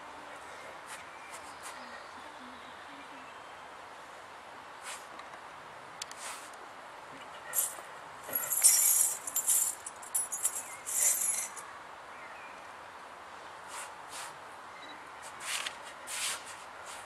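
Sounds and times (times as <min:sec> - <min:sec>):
coins jingling into a mug: 0:07.6 - 0:11.6.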